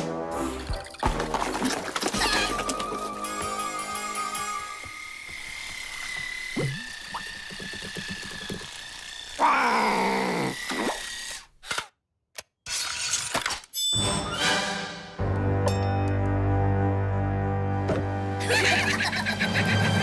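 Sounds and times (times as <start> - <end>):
cartoon music: 2.1 - 4.8, 18.4 - 20.0.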